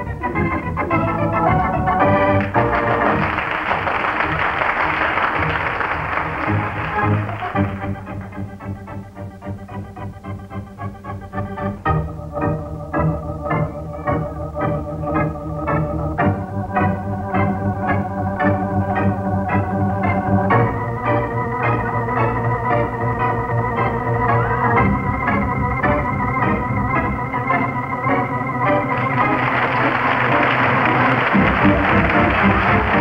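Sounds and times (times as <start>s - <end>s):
organ music with steady beat: 0.0s - 33.0s
applause: 2.4s - 8.4s, 28.9s - 33.0s.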